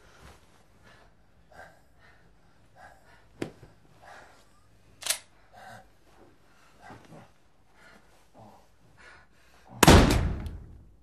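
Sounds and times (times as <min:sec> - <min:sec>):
people breathing strained: 0:00.0 - 0:09.8.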